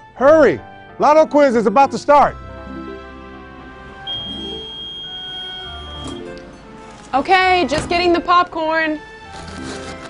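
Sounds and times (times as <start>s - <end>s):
background music: 0.0s - 10.0s
microwave oven beep: 4.0s - 6.4s.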